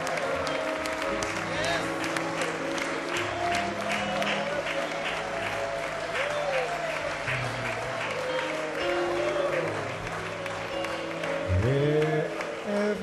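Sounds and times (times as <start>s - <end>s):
congregation clapping and cheering: 0.0s - 13.0s
live worship music: 0.0s - 13.0s.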